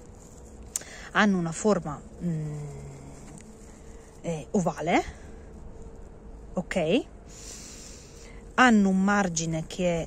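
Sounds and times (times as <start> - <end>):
woman humming: 2.2 - 3.4.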